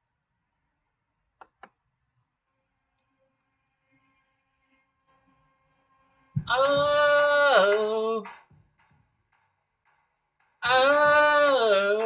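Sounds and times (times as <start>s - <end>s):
man singing a long note: 6.4s - 8.4s, 10.6s - 12.0s.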